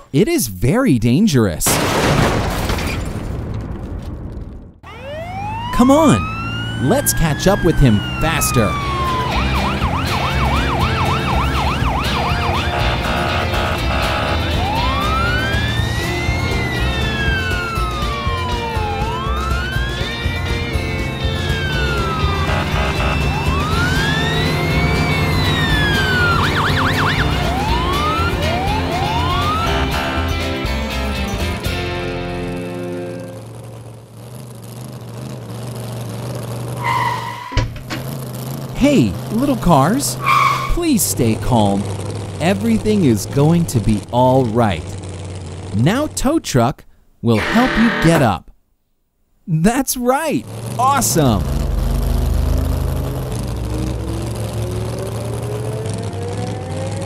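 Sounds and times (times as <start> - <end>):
police siren wailing: 4.8 - 30.6, 40.2 - 40.8, 47.4 - 48.2, 53.7 - 57.0.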